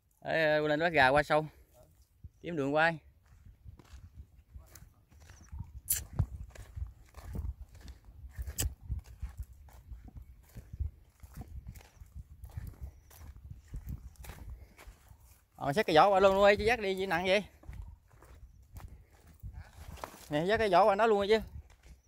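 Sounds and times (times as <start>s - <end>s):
footsteps through dry grass and twigs: 3.2s - 22.0s.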